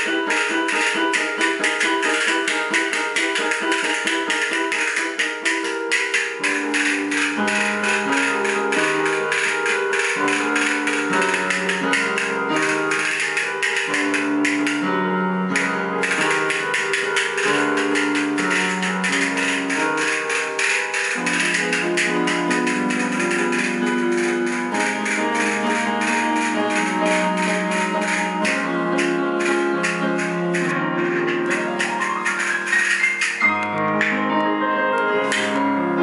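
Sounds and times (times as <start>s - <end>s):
castanets clicking: 0.0s - 34.2s, 35.3s - 35.6s
electronic keyboard chords: 0.0s - 36.0s.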